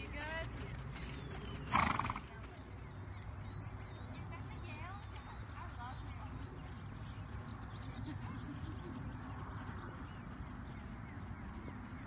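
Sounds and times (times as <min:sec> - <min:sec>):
birds chirping: 0:00.0 - 0:12.0
horse calling: 0:01.0 - 0:02.5.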